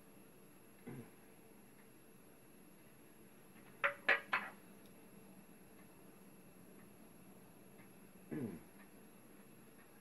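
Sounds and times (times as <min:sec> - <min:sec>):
short vocal sounds: 0:08.3 - 0:08.7.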